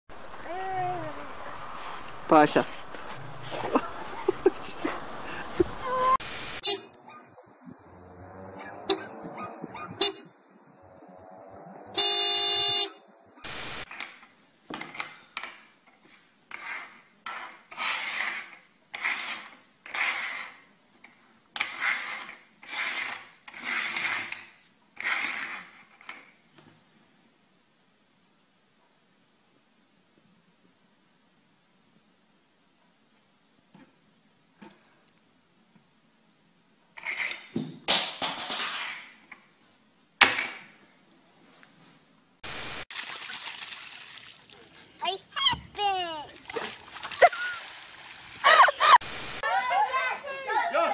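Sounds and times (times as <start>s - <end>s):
burst of noise: 0.2s - 8.0s, 13.4s - 13.9s, 49.0s - 49.9s
car horn: 6.0s - 7.0s, 8.4s - 13.8s.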